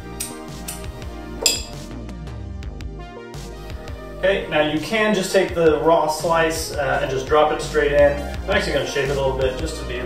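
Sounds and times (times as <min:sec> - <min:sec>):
background music: 0:00.0 - 0:10.0
barware clinking: 0:01.4 - 0:01.8.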